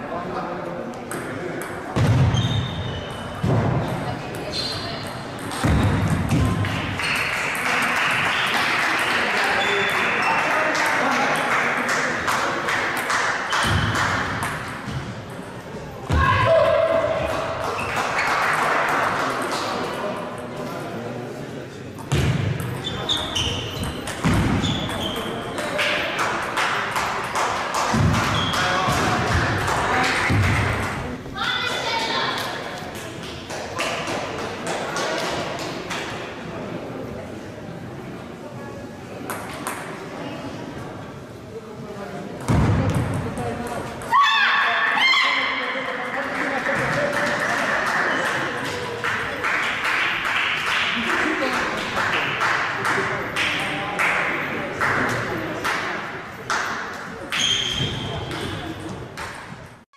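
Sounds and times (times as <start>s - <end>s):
table tennis balls clicking: 3.9s - 7.9s, 22.6s - 30.8s.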